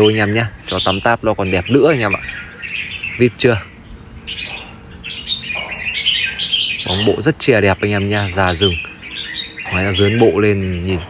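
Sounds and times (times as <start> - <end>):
bird chirping high warbled notes: 0.0 - 11.0.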